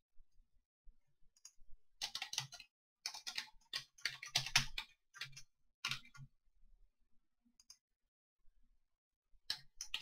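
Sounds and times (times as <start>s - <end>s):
computer keyboard typing: 1.4s - 6.3s, 9.5s - 10.0s.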